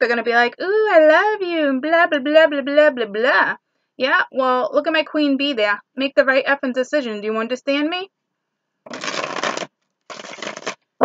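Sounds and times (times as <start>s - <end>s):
cards being shuffled: 8.9s - 10.8s.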